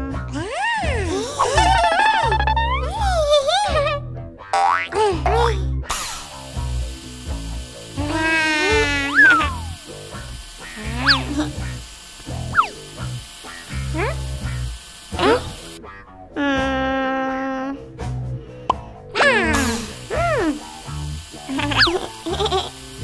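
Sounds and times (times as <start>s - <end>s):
upbeat cartoon music with bass beat: 0.0s - 23.0s
cartoon boings: 4.5s - 5.0s, 8.2s - 9.7s, 10.8s - 11.6s, 12.5s - 12.8s, 21.5s - 22.7s
cartoon whistle glides: 9.1s - 9.6s, 12.5s - 12.8s.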